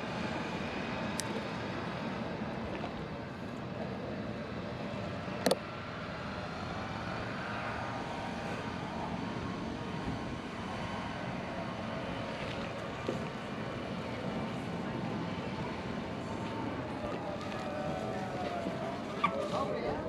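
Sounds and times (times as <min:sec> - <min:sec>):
outdoor background noise: 0:00.0 - 0:20.0.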